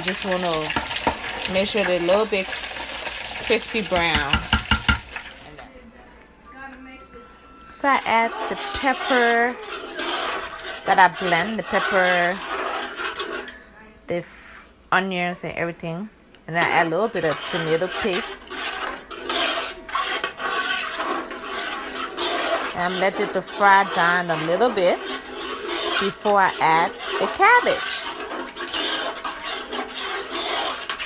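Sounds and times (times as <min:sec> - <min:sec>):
sauce bubbling as it fries: 0:00.0 - 0:05.4, 0:18.2 - 0:22.8, 0:23.4 - 0:31.0
spoon scraping metal pot: 0:00.0 - 0:05.4, 0:07.7 - 0:13.6, 0:16.5 - 0:31.0
oil sizzling: 0:00.0 - 0:05.6, 0:07.5 - 0:13.5, 0:16.6 - 0:31.0.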